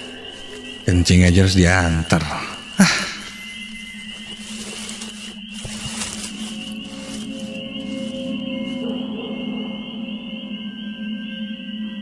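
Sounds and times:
high wavering tone: 0.0s - 12.0s
low steady drone: 0.0s - 12.0s.

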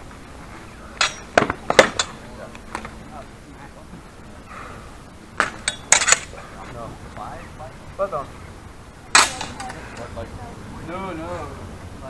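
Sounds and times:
steel swords clashing: 1.0s - 2.2s, 5.4s - 6.4s, 9.1s - 9.8s.

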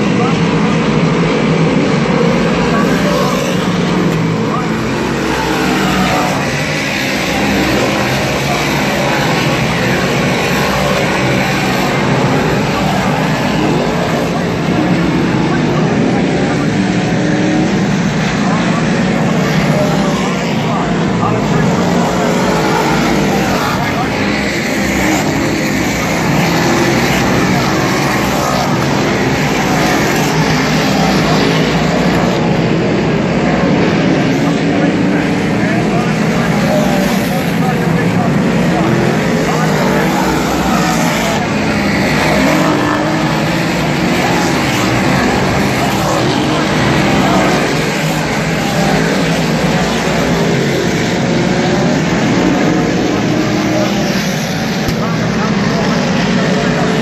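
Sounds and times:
race car engines running hard: 0.0s - 57.0s.

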